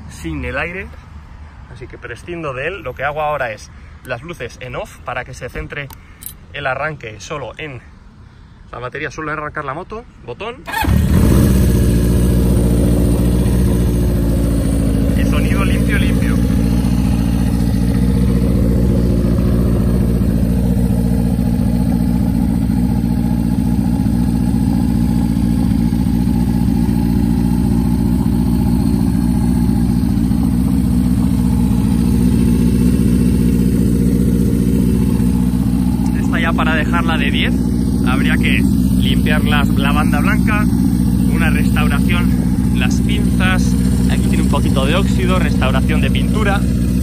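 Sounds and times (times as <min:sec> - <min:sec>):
motorcycle engine idling: 0:10.7 - 0:47.0.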